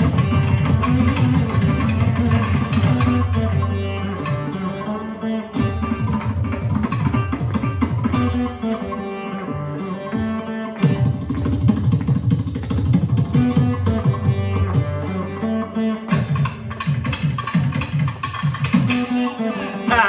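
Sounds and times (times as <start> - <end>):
plucked veena melody: 0.0 - 20.0.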